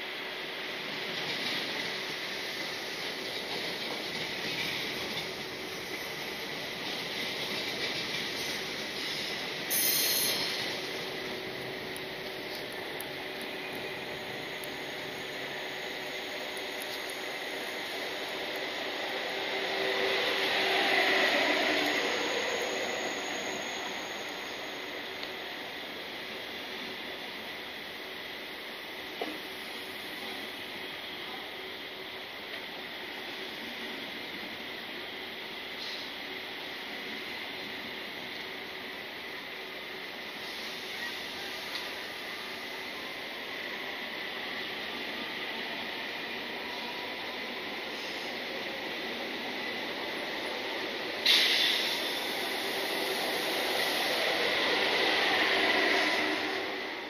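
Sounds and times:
electric train rolling hiss: 0:00.0 - 0:57.0
short hiss: 0:09.0 - 0:10.7, 0:51.2 - 0:52.4.

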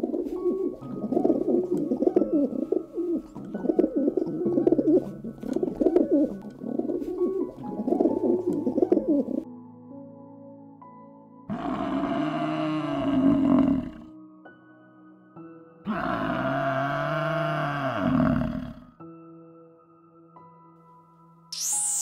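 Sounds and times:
pigeons cooing: 0:00.0 - 0:09.4
soft background music: 0:00.0 - 0:22.0
loud low animal call: 0:15.9 - 0:18.9.

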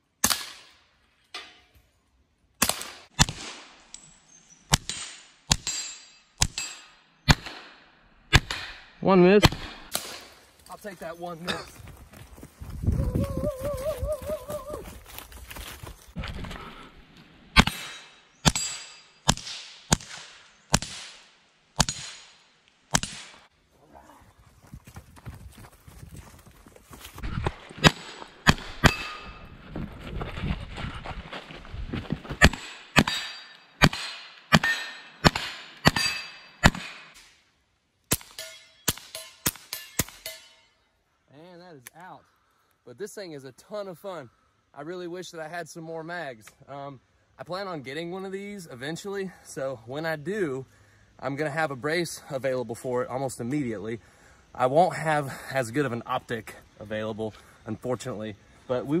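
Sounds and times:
suppressed pistol shots: 0:04.7 - 0:10.3, 0:32.4 - 0:37.2.

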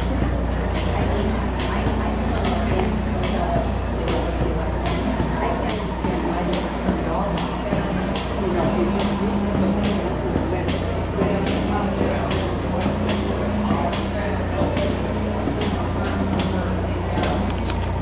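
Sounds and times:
people talking: 0:00.0 - 0:18.0
steady low hum: 0:00.0 - 0:18.0.

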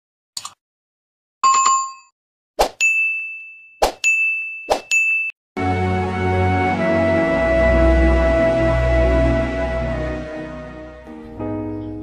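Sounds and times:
notification bell ding: 0:01.4 - 0:02.1, 0:02.8 - 0:05.4
soft background music: 0:05.6 - 0:12.0.

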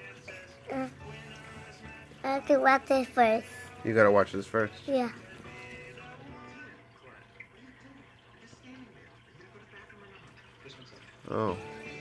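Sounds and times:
television dialogue: 0:00.0 - 0:12.0.

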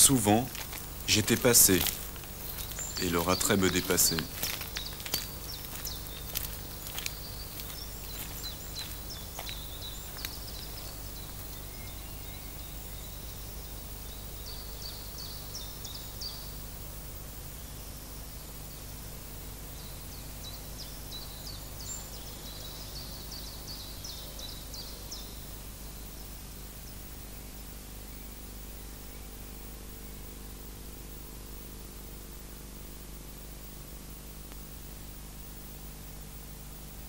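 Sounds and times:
high chirps: 0:00.0 - 0:11.6
steady low hum and hiss: 0:00.0 - 0:37.0.

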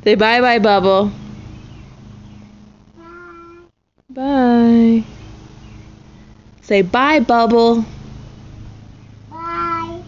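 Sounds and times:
toddler saying bye: 0:03.0 - 0:03.7, 0:09.3 - 0:10.0.

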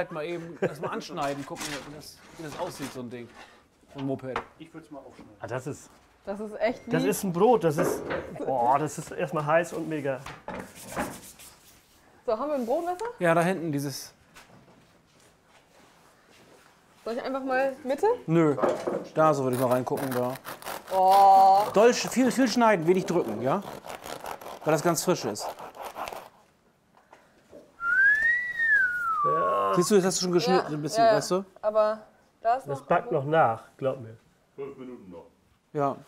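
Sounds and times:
rising whistled note: 0:27.8 - 0:30.0.

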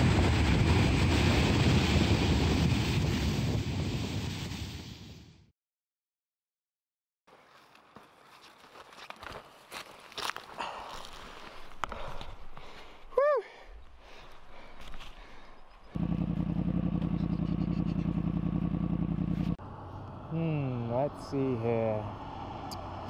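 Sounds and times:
footsteps: 0:07.3 - 0:13.1
motorcycle engine running loud: 0:16.0 - 0:19.6.

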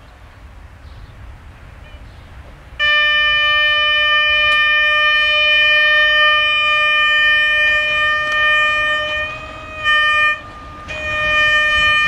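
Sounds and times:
train horn long blast: 0:02.8 - 0:12.0.

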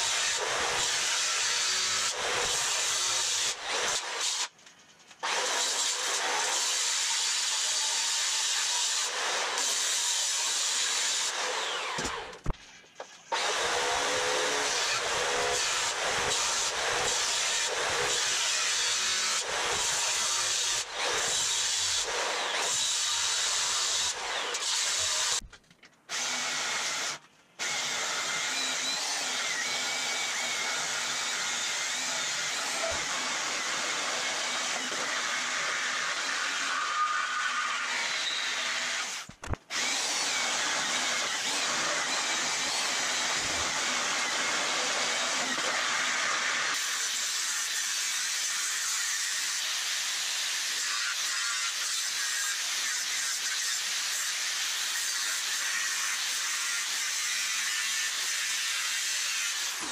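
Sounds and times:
angle grinder cutting steel: 0:00.0 - 0:04.6, 0:05.2 - 0:12.5, 0:13.2 - 0:25.5, 0:26.1 - 0:59.9.

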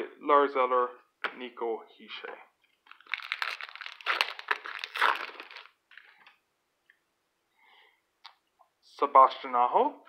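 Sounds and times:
plastic wrapper crinkling: 0:02.7 - 0:06.4.

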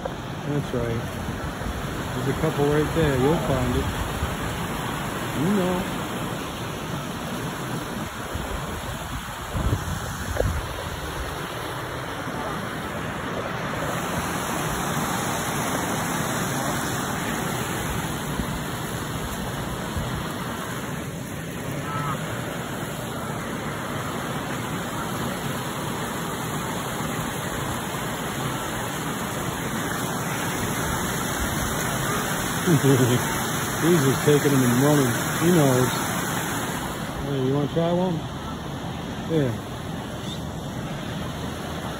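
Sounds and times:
steady rushing outdoor noise: 0:00.0 - 0:41.9.

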